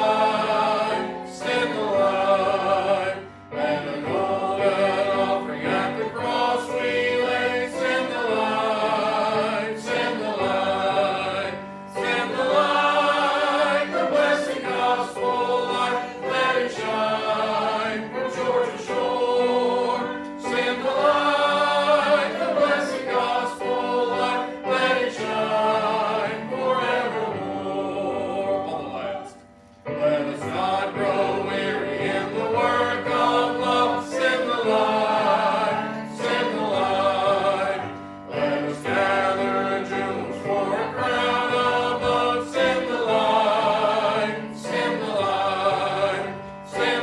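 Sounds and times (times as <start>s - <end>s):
congregation singing a hymn: 0.0s - 47.0s
piano accompaniment: 0.0s - 47.0s.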